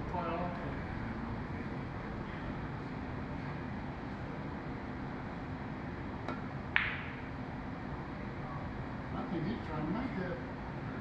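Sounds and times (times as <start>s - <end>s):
low room hum: 0.0s - 11.0s
cue tip tapping cue ball: 6.2s - 7.3s
pool balls clacking: 6.7s - 7.3s.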